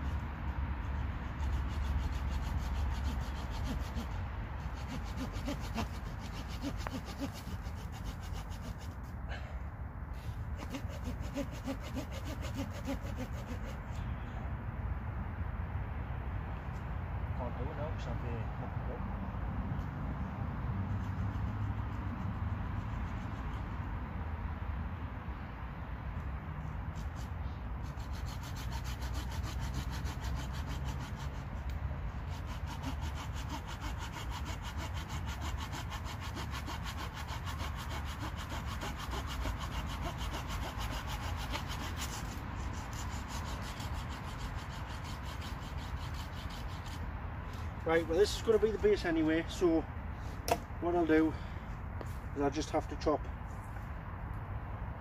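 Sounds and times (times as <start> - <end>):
hand saw cutting wood: 0.0 - 9.2, 10.2 - 14.0, 20.9 - 23.8, 26.9 - 49.7.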